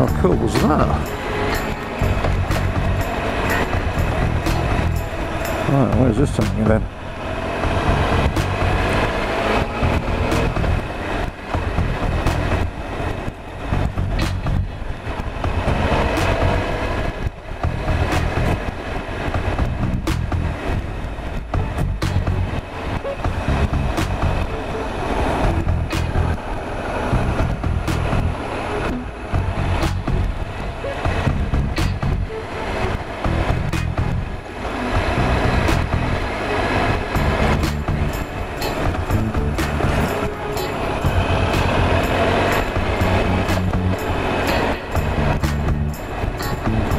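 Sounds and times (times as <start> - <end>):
motorcycle engine running: 0.0 - 46.9.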